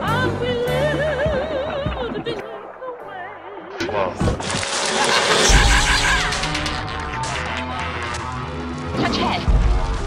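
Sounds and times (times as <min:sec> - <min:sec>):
dense music: 0:00.2 - 0:10.0.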